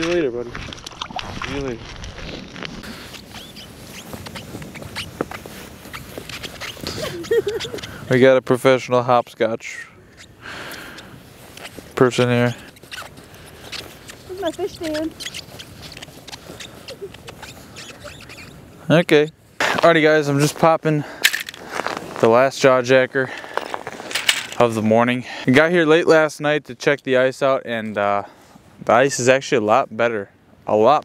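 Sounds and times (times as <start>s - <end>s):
boot squeaks: 1.8s - 8.1s, 10.0s - 20.6s
boots crunching on ice and snow: 21.6s - 22.5s.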